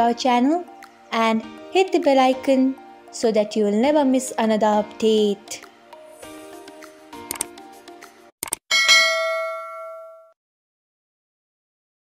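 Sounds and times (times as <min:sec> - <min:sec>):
mouse clicks: 0:07.2 - 0:07.5
notification bell ding: 0:08.7 - 0:10.4.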